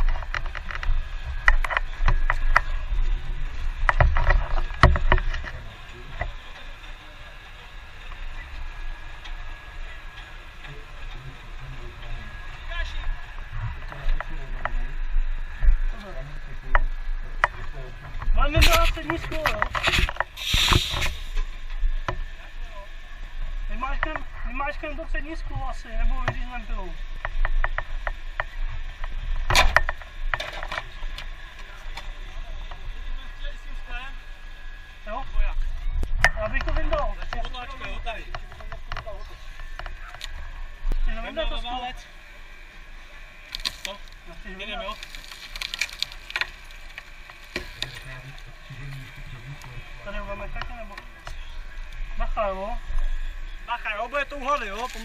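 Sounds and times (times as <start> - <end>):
knocks and cracking: 0.0 - 2.7, 3.8 - 5.6, 44.9 - 48.2
people talking: 9.7 - 15.0, 15.8 - 20.9, 35.1 - 40.3, 41.0 - 42.1, 43.8 - 45.0, 47.6 - 55.0.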